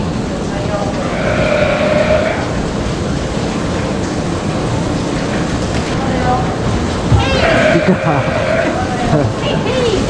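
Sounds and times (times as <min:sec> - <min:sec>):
steady rushing noise with rumble: 0:00.0 - 0:10.0.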